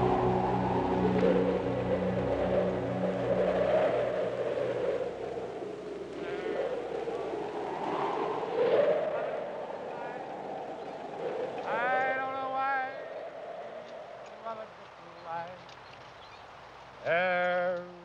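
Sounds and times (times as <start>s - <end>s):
wailing voice-like calls: 0.0s - 7.5s
wind gusting: 0.0s - 17.0s.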